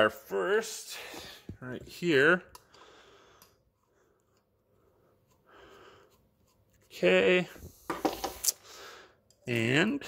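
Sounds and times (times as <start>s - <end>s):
faint breath: 2.6s - 6.2s, 8.6s - 9.3s.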